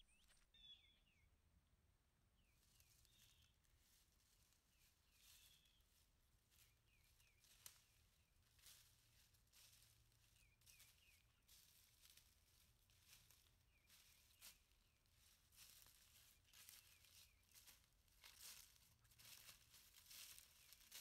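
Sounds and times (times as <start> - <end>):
footsteps crunching through dry leaves: 2.6 - 21.0.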